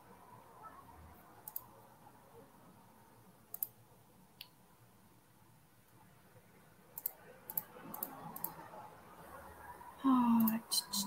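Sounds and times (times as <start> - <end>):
computer mouse clicks: 1.4 - 1.8, 3.5 - 3.8, 6.9 - 8.6, 10.4 - 10.6.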